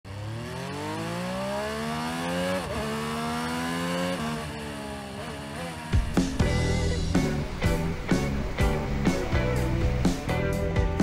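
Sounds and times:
motorcycle accelerating hard: 0.1 - 10.7.

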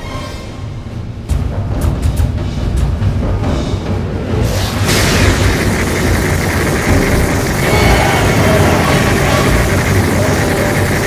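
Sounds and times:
loud steady rumbling: 4.9 - 11.0.

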